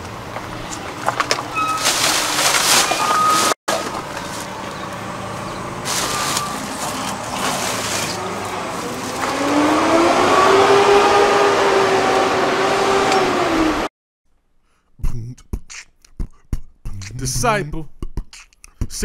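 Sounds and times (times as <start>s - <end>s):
traffic noise: 0.0s - 13.9s
vehicle engine revving: 3.7s - 13.9s.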